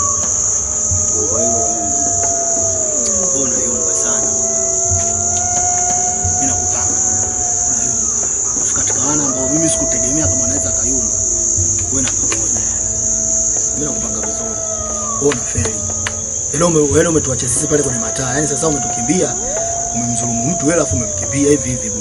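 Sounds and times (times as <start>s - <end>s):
crickets chirping: 0.0s - 22.0s.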